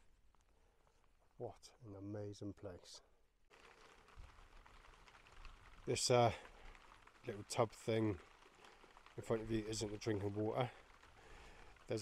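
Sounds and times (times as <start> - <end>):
faint outdoor background hiss: 0.0 - 12.0.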